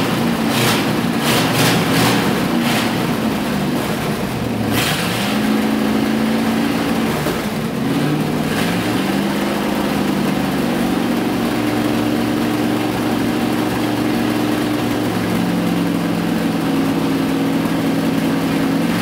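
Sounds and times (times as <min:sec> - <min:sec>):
engine revving: 0:00.0 - 0:19.0.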